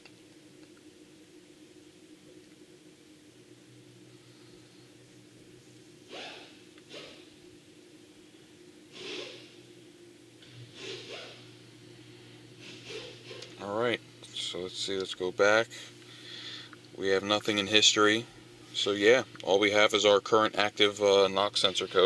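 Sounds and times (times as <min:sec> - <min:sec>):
faint steady hum: 0:00.0 - 0:22.0
person breathing: 0:04.0 - 0:05.0, 0:16.1 - 0:16.8.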